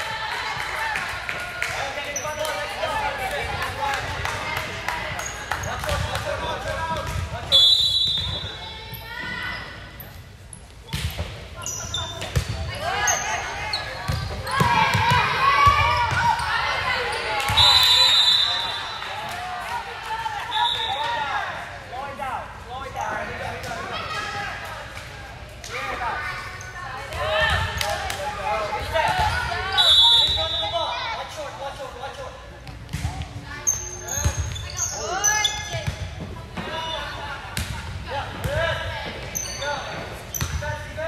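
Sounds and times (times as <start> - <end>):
sneaker squeaks: 7.1 - 19.1, 26.5 - 26.9, 32.1 - 37.3, 38.4 - 40.9.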